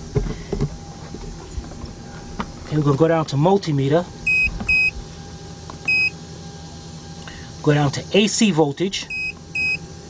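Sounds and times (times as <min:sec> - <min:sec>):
scan tool beeping: 0:04.3 - 0:05.0, 0:05.9 - 0:06.2, 0:09.1 - 0:09.8.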